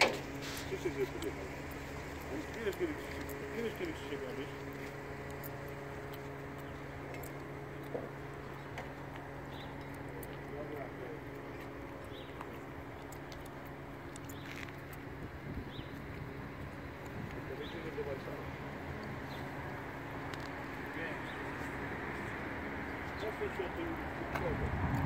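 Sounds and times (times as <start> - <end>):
engine idling: 0.0 - 25.0
faint voices: 0.0 - 25.0.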